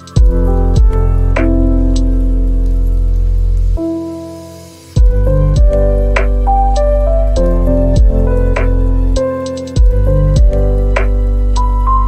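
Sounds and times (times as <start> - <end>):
rain: 0.0 - 12.0
slow relaxation music: 0.0 - 12.0
water dripping: 0.0 - 12.0.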